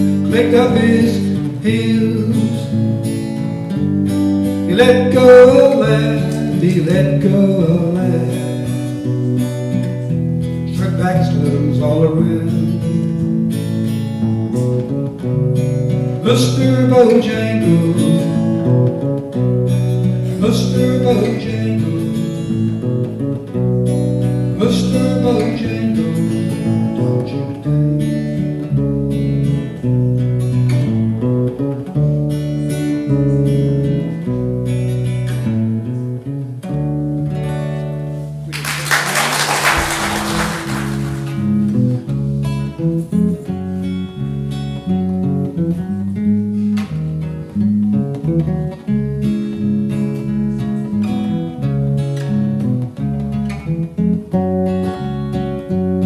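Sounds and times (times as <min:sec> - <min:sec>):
acoustic guitar: 0:00.0 - 0:56.0.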